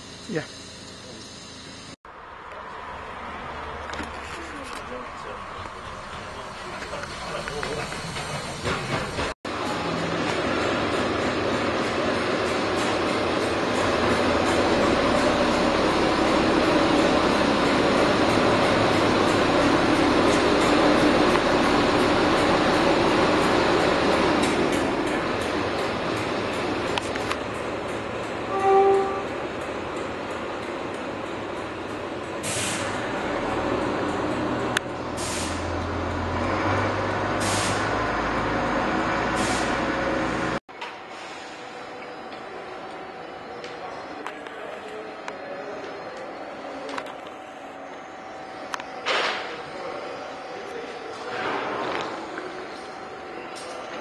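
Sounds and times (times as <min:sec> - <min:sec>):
rolling stock rumble and hiss: 0:00.0 - 0:02.0, 0:03.9 - 0:54.0
diesel engine running low: 0:00.0 - 0:54.0
locomotive horn toot: 0:28.4 - 0:29.4
sharp air hisses: 0:32.4 - 0:33.0, 0:35.2 - 0:35.7, 0:37.4 - 0:37.9.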